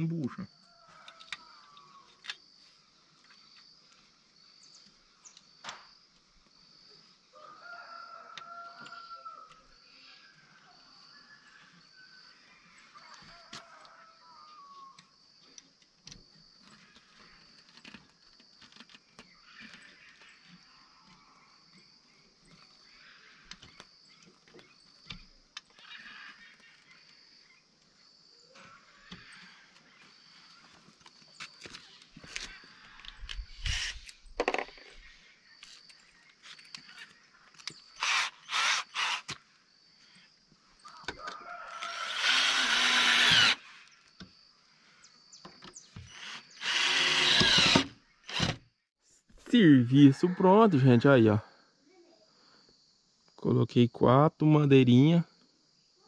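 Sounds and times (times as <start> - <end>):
power drill drilling into wall: 33.7 - 34.1, 38.0 - 39.4, 41.8 - 43.9, 46.0 - 48.6.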